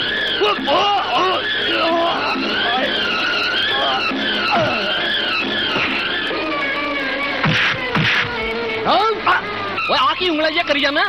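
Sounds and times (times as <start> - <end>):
whining vocal cries: 0.0 - 10.4
punch sound effect: 7.4 - 8.4.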